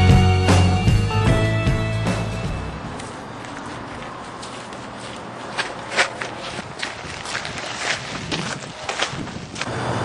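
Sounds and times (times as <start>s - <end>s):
footsteps on pavement: 2.2s - 9.7s.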